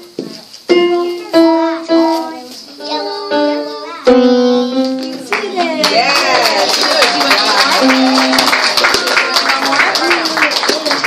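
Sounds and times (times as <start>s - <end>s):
electronic keyboard notes: 0.0s - 5.3s
people clapping and cheering: 4.8s - 11.0s.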